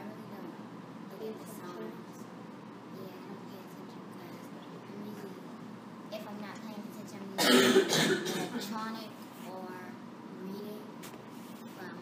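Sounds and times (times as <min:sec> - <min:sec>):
person clearing throat: 0:07.4 - 0:08.6.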